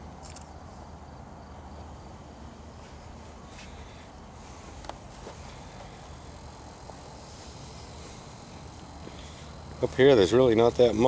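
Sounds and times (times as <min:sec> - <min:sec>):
night outdoor background noise: 0:00.0 - 0:11.0
high-pitched whine: 0:05.1 - 0:11.0
person speaking: 0:09.8 - 0:11.0.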